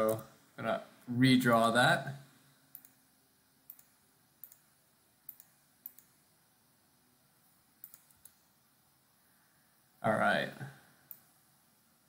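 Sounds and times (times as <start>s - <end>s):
faint computer mouse clicks: 0.0s - 0.3s, 2.7s - 3.0s, 3.6s - 4.7s, 5.3s - 6.2s, 7.8s - 8.5s, 11.0s - 11.3s.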